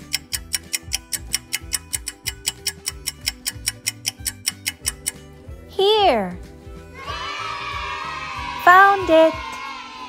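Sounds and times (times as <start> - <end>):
clock-like ticking: 0.0 - 5.3.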